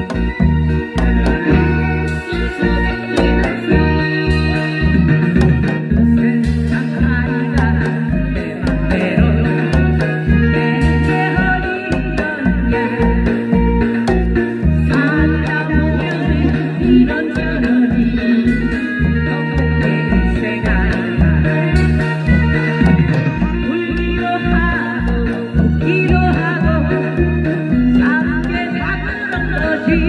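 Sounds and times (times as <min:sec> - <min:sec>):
bouncing bass line: 0:00.0 - 0:30.0
drum beats: 0:00.0 - 0:30.0
woman singing into a microphone: 0:00.0 - 0:30.0.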